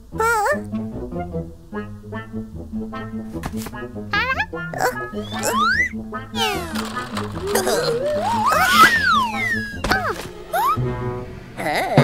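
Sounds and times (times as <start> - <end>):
cartoon background music: 0.0 - 12.0
falling whistle glides: 8.3 - 9.8.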